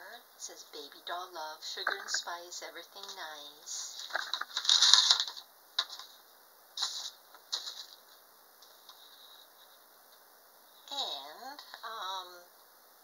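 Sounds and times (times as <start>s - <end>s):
paper rustling: 3.8s - 6.2s, 6.8s - 9.8s.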